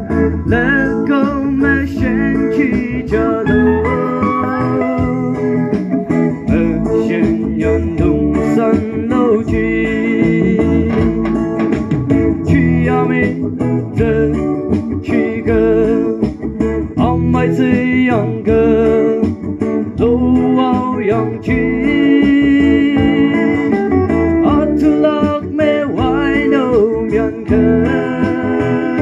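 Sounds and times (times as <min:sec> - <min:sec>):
person singing with vibrato: 0:00.0 - 0:11.3, 0:12.3 - 0:16.2, 0:20.0 - 0:29.0
bass: 0:00.0 - 0:29.0
guitar: 0:00.0 - 0:29.0.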